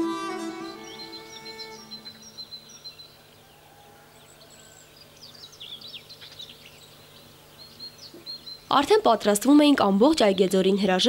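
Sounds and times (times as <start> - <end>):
violin melody: 0.0 - 2.3
small birds chirping: 0.4 - 11.0.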